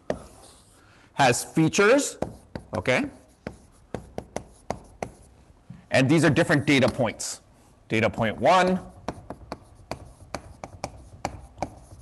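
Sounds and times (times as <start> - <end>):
chalk tapping and scraping on blackboard: 0.0 - 0.8, 2.1 - 5.4, 8.4 - 12.0.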